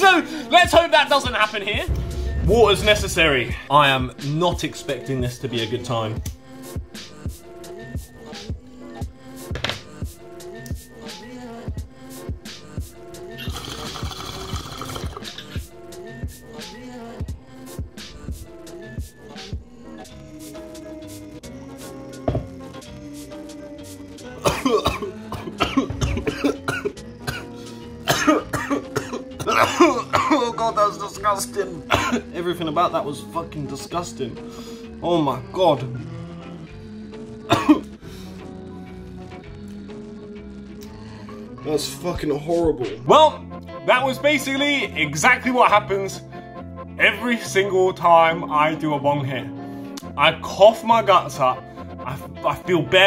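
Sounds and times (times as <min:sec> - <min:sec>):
background music: 0:00.0 - 0:53.0
hip-hop beat with kick drum: 0:01.6 - 0:04.7
man coughing: 0:24.4 - 0:30.6, 0:31.9 - 0:32.4, 0:37.5 - 0:37.9.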